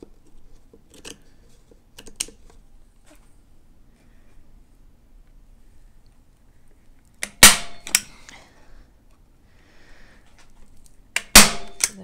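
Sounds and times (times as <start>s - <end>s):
staple gun firing: 7.2s - 8.0s, 11.2s - 12.0s.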